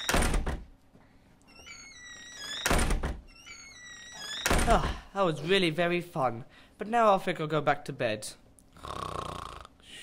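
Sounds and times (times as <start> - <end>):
faint high chirping: 1.5 - 2.7, 3.3 - 4.5.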